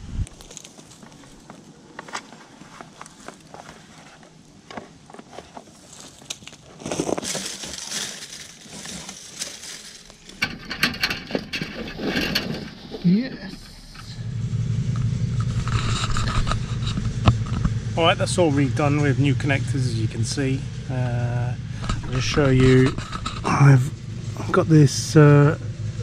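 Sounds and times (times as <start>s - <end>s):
cables scraping through conduit: 8.7s - 19.0s, 21.6s - 24.6s.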